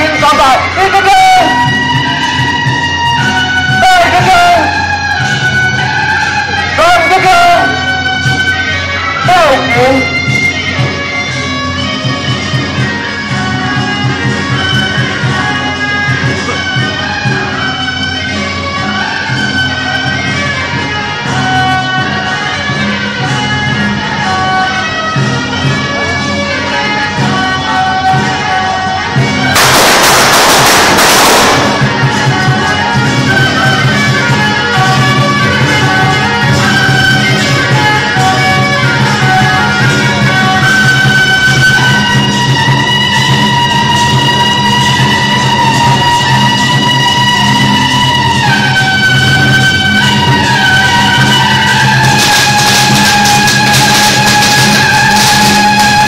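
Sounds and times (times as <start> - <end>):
drums and cymbals beat: 9.4 - 17.7, 29.1 - 56.0
shrill reed horn playing: 28.0 - 56.0
firecrackers crackling: 29.4 - 34.7, 48.9 - 56.0.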